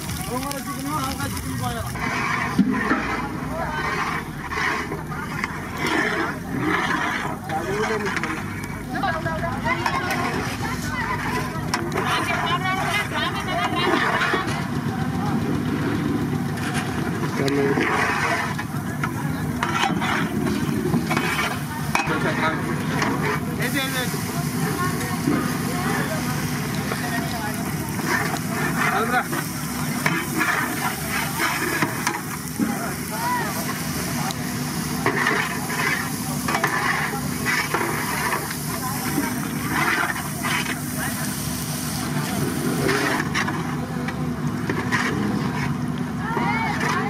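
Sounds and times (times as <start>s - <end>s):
people talking: 0.0s - 47.0s
prawns frying in oil: 0.0s - 47.0s
metal ladle scraping a pan: 1.4s - 8.7s, 9.7s - 14.6s, 16.7s - 33.9s, 34.7s - 41.4s, 42.5s - 43.8s, 44.6s - 45.8s, 46.4s - 47.0s.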